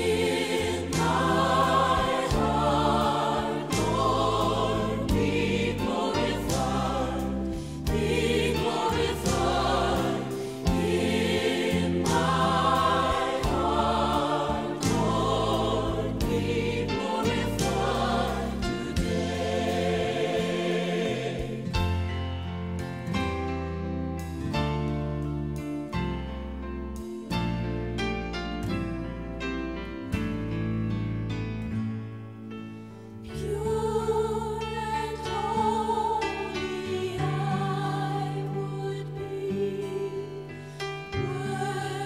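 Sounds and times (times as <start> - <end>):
choir singing with vibrato: 0.0 - 22.2, 33.2 - 42.0
instrumental accompaniment: 0.0 - 31.3.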